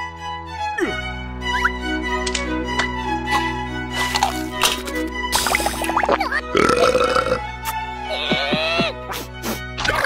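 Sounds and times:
background music: 0:00.0 - 0:10.0
cartoon character belching: 0:06.3 - 0:07.4.

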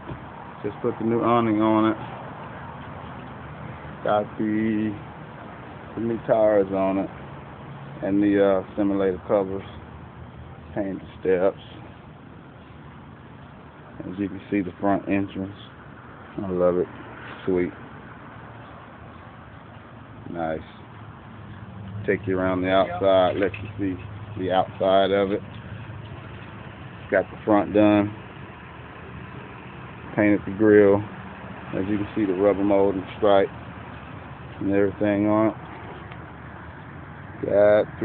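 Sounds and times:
engine idling hum: 0:00.0 - 0:38.0.

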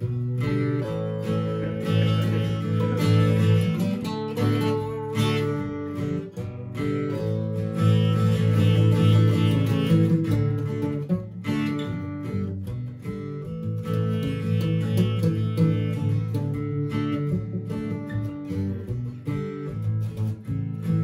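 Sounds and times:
acoustic guitars strumming: 0:00.0 - 0:21.0.

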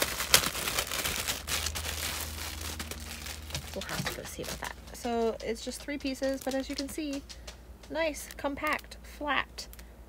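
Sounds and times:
plastic bag crinkling: 0:00.0 - 0:08.9.

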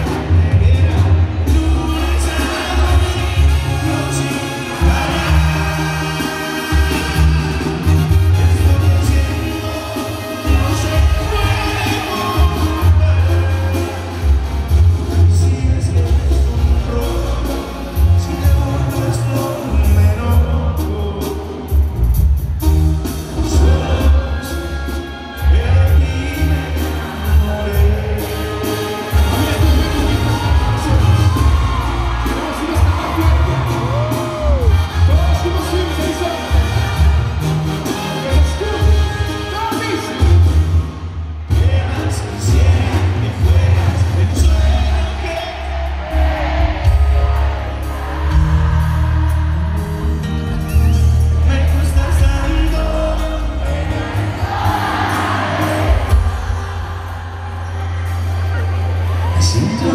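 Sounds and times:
man singing into microphone: 0:00.0 - 0:14.4, 0:15.2 - 0:21.8, 0:23.4 - 0:36.8, 0:41.5 - 0:46.3, 0:51.3 - 0:56.4, 0:58.6 - 0:59.9
banda music through pa: 0:00.0 - 0:59.9
crowd cheering: 0:00.0 - 0:59.9.

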